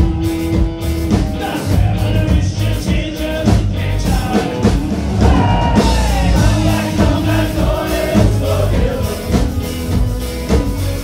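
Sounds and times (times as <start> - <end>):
bass guitar: 0.0 - 11.0
drum kit: 0.0 - 11.0
electric guitars: 0.0 - 11.0
person singing lead vocal: 1.1 - 10.0.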